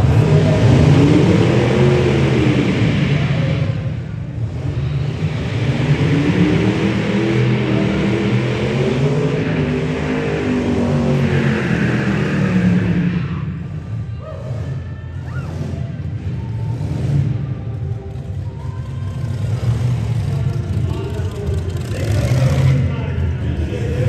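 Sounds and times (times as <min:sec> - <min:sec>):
engine revving hard: 0:21.4 - 0:23.0.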